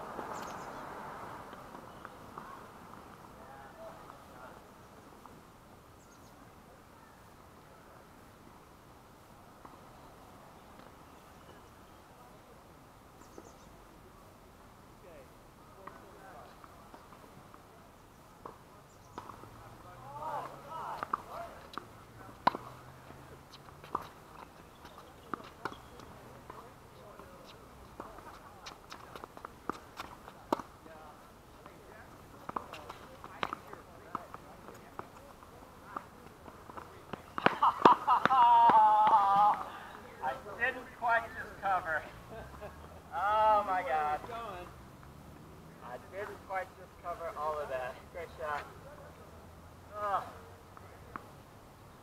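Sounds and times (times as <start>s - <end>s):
tennis ball bouncing: 19.2s - 19.5s, 20.3s - 30.8s, 32.4s - 35.2s, 35.9s - 39.7s
racket hitting tennis ball: 20.4s - 22.8s.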